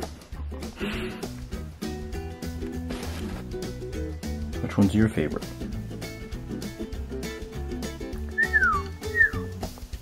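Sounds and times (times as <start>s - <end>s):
background music: 0.0s - 10.0s
quail whistling: 8.4s - 9.5s.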